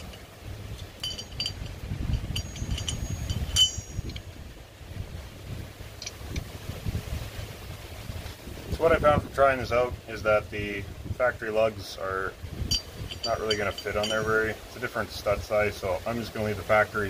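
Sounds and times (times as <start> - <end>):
light metallic clinks: 0.0 - 4.5, 5.9 - 6.4, 12.6 - 15.6
wind rumble on microphone: 0.0 - 17.0.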